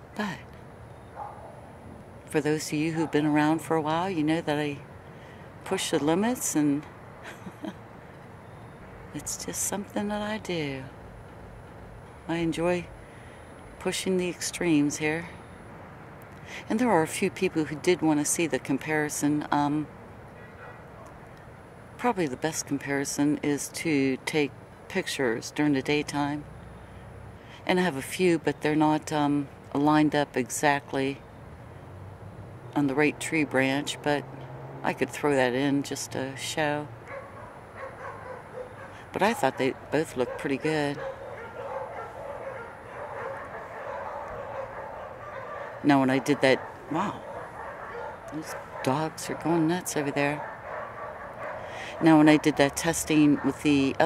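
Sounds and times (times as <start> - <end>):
low ambient hum: 0.0 - 54.0
dogs barking and yipping: 1.2 - 1.6, 20.4 - 21.2, 37.0 - 54.0.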